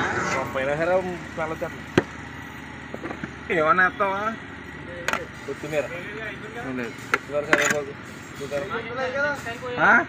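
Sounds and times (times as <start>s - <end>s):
people talking: 0.2s - 1.8s, 3.5s - 10.0s.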